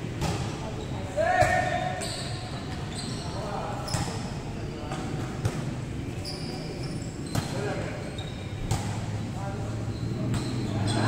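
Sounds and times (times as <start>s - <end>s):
players' voices: 0.0s - 11.0s
shoe squeaks: 0.8s - 4.9s, 6.1s - 8.7s, 9.8s - 11.0s.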